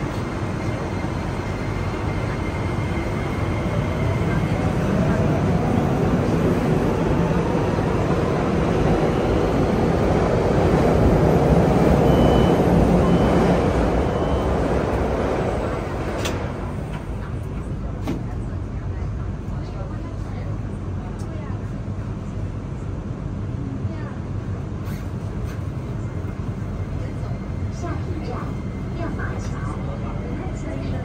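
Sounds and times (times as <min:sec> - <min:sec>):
subway train rumble: 0:00.0 - 0:31.0
door warning beeps: 0:11.9 - 0:15.0
train doors shutting with knock: 0:14.8 - 0:17.3, 0:17.9 - 0:18.4.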